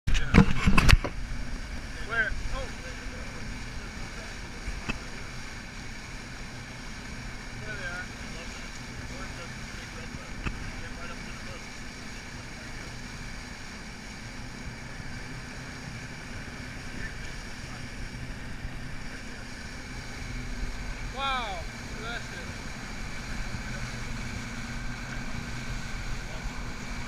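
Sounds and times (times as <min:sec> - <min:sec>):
churning wake rushing: 0:00.1 - 0:27.0
outboard motors humming: 0:00.1 - 0:27.0.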